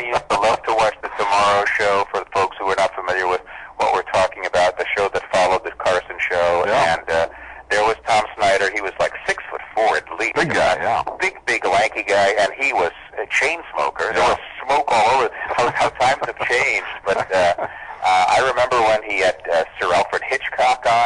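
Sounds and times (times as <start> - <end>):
men talking: 0.0 - 21.0.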